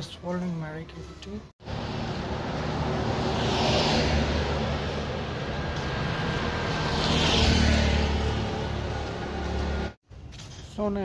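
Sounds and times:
vehicles passing: 0:00.0 - 0:10.5.

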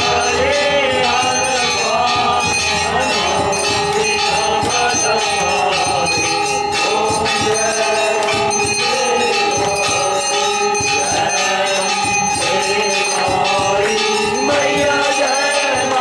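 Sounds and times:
devotional singing: 0:00.0 - 0:16.0
temple bells ringing rapidly: 0:00.0 - 0:16.0.

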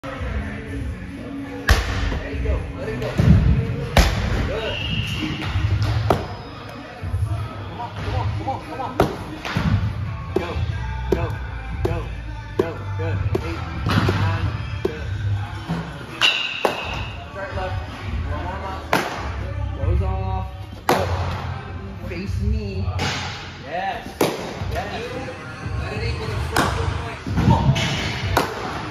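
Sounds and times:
background music with singing: 0:00.0 - 0:28.9.

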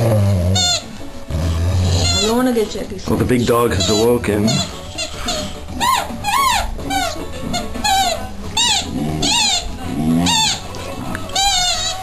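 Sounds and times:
dog moaning calls: 0:00.0 - 0:02.3, 0:07.8 - 0:10.7
dog whining: 0:00.0 - 0:02.4, 0:03.7 - 0:10.7, 0:11.3 - 0:12.0.

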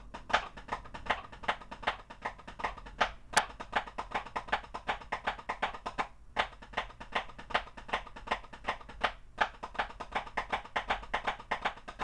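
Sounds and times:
drumsticks tapping practice pad: 0:00.0 - 0:12.0.

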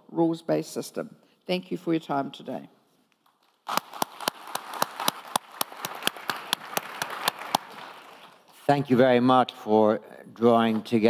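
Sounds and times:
audience applauding: 0:03.7 - 0:08.5.

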